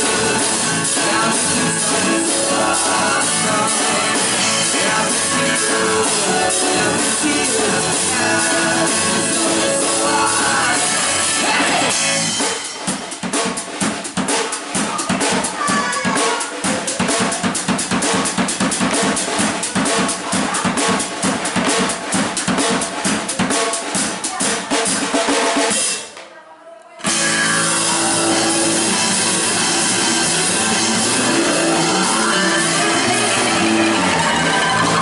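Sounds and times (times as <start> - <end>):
drum kit playing fast beat: 0.0 - 26.1, 27.0 - 35.0.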